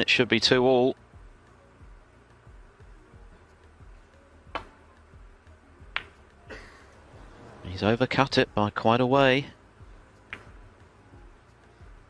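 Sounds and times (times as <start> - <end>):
cue tip clicking cue ball: 4.5 - 4.8, 5.9 - 6.4, 10.3 - 10.6
snooker balls clicking: 4.5 - 4.8, 5.9 - 6.4, 10.2 - 10.8
soft ball knock: 4.5 - 4.8, 5.9 - 6.2, 10.3 - 10.7.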